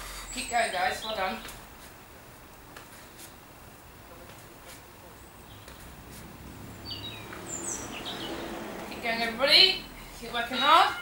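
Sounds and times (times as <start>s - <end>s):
faint background noise: 0.0s - 11.0s
bird chirping: 5.2s - 6.0s, 6.6s - 9.2s.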